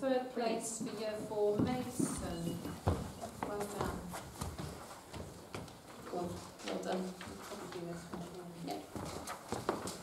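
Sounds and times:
footsteps on a hard floor: 0:00.8 - 0:10.0.

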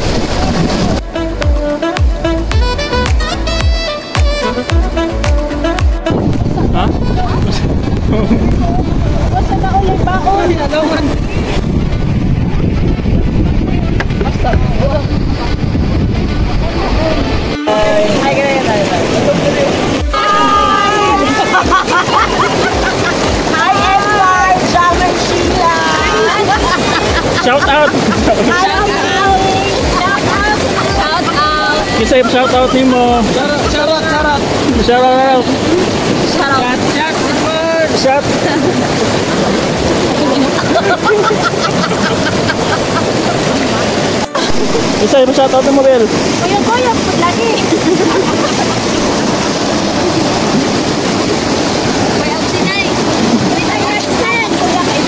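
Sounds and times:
river rushing over rocks: 0:00.0 - 0:55.0
wind buffeting microphone: 0:05.9 - 0:55.0.

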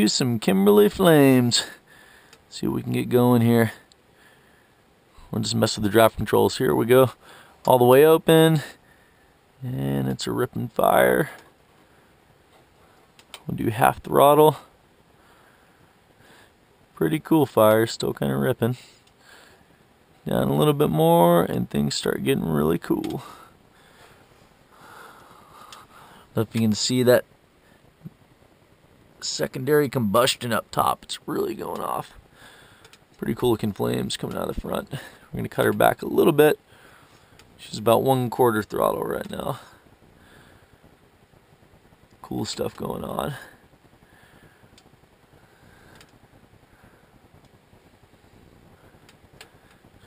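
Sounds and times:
fire crackles: 0:00.0 - 0:50.0
wood fire low rush: 0:00.0 - 0:50.0.

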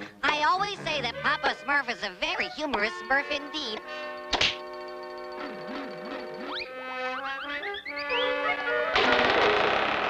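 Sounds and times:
cartoon background music: 0:00.0 - 0:09.8
cartoon axe chop: 0:04.3 - 0:04.6.

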